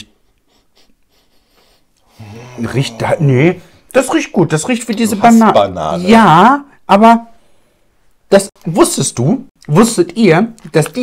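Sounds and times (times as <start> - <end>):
man sniffing: 0.2 - 3.8.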